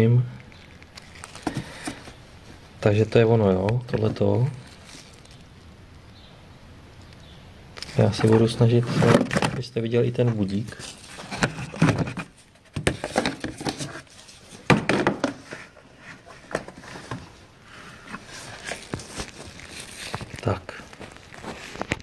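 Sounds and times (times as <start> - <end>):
camera handling knocks and scrapes: 11.2 - 14.0.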